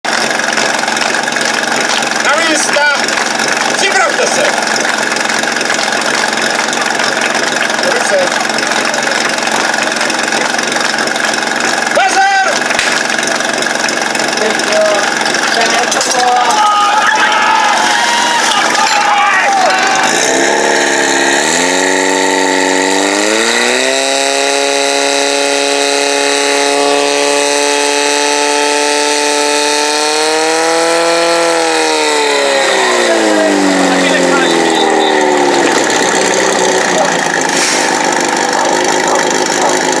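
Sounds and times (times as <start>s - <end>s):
pump engine revving: 0.0s - 40.0s.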